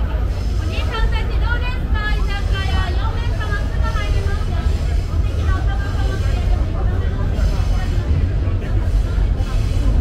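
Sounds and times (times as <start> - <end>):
low rumble of city noise: 0.0 - 10.0
people talking: 0.0 - 10.0.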